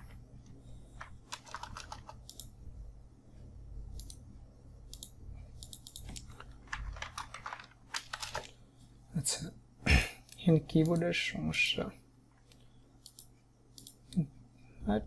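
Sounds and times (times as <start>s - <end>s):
computer keyboard typing: 1.0s - 2.5s, 4.9s - 8.5s.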